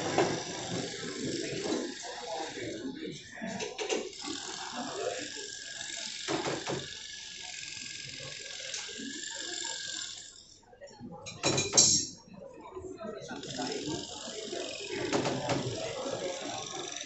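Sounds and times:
tool ratcheting whir: 0:00.0 - 0:02.8, 0:03.5 - 0:10.4, 0:13.3 - 0:17.0
low voices murmuring: 0:12.2 - 0:17.0.

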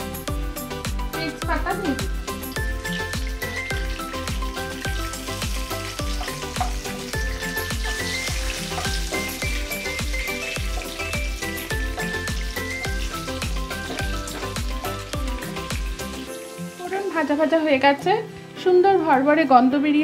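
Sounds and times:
spices sizzling in hot oil: 0:00.0 - 0:19.7
background music with steady beat: 0:00.0 - 0:20.0.

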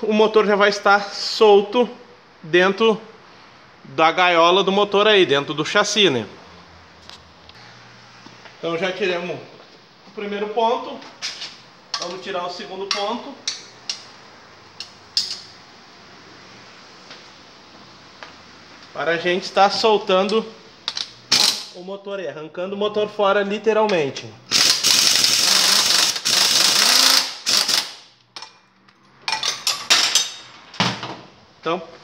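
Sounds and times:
cordless drill running: 0:24.5 - 0:28.0.

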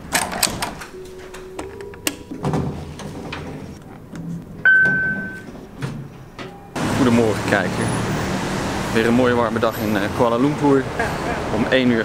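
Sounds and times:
electronic beep: 0:04.6 - 0:05.5.

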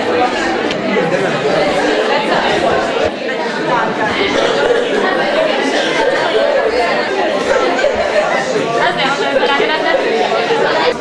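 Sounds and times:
students chattering: 0:00.0 - 0:11.0.

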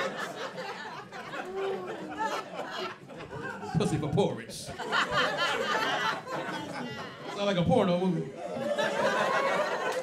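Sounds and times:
audience chattering and laughing: 0:00.0 - 0:10.0
comedian talking: 0:03.7 - 0:04.8, 0:07.2 - 0:08.3.

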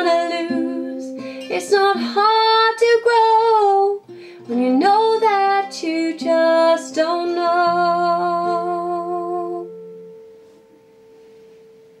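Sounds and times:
woman singing with vibrato: 0:00.0 - 0:09.8
ringing guitar notes: 0:07.7 - 0:12.0.

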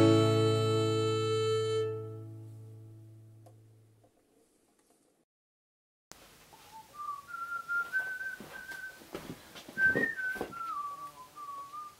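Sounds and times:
person whistling a tune: 0:06.7 - 0:09.0, 0:09.8 - 0:11.9.

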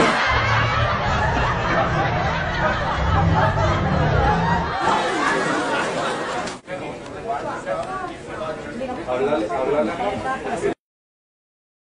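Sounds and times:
indistinct chatter: 0:00.0 - 0:10.8
low rumble: 0:00.2 - 0:04.8.

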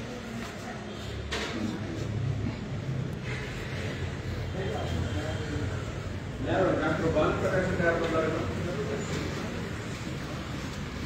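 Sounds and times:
muffled voices: 0:00.0 - 0:11.0
room noise: 0:00.0 - 0:11.0.

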